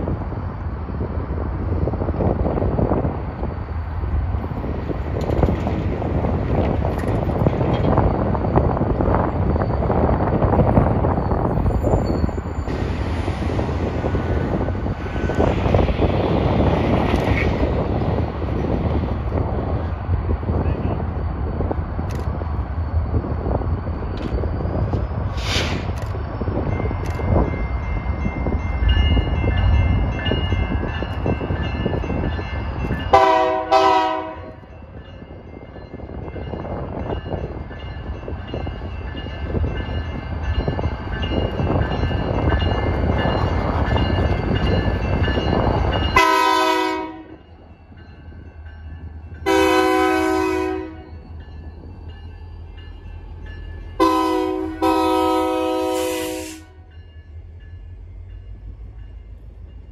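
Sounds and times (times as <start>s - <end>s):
diesel locomotive rumbling past: 0.0s - 59.9s
locomotive air horn blasts: 33.1s - 34.6s, 46.2s - 47.4s, 49.4s - 51.1s, 54.0s - 56.8s.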